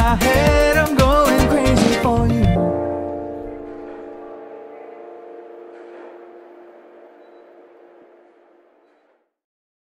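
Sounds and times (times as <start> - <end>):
pop song held chord: 0.0 - 8.5.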